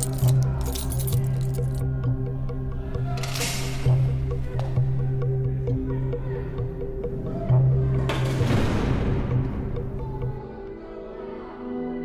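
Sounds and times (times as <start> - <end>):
handcuffs clinking and rattling: 0.0 - 2.2, 2.9 - 4.3
low background music: 0.0 - 12.0.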